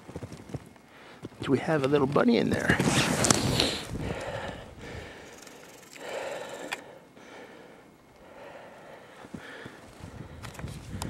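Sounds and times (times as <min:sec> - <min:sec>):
person breathing: 0:00.9 - 0:01.2, 0:03.4 - 0:11.0.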